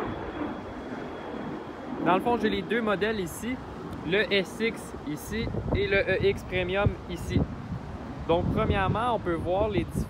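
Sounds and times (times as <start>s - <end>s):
faint high whine: 0.0s - 8.3s
low outdoor rumble: 0.0s - 10.0s.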